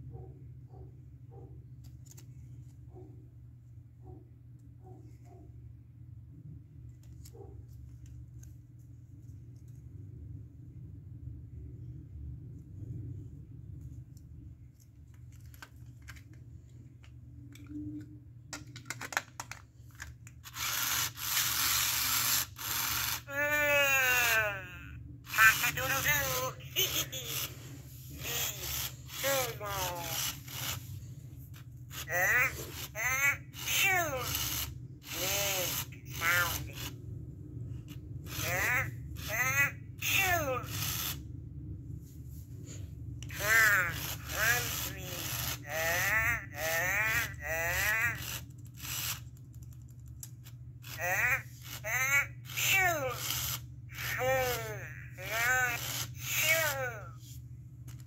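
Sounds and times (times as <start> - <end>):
toy motor and gears grinding: 20.4 - 37.0, 37.8 - 41.3, 43.2 - 49.4, 50.2 - 57.2
electronic toy voice: 20.6 - 30.8, 31.9 - 36.9, 38.3 - 41.2, 43.2 - 49.2, 50.8 - 57.2.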